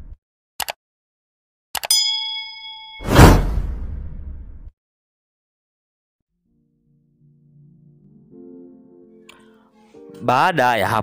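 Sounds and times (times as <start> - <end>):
bell-like ding: 1.9 - 3.4
loud whoosh with deep boom: 3.0 - 4.7.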